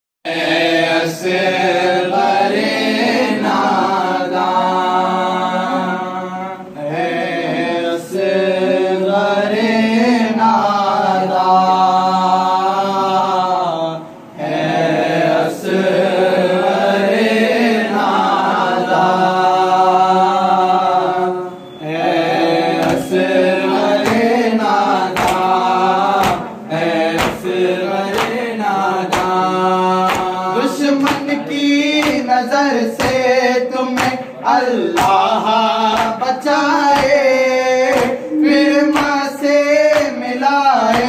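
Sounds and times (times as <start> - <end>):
young men chanting a lament: 0.3 - 41.0.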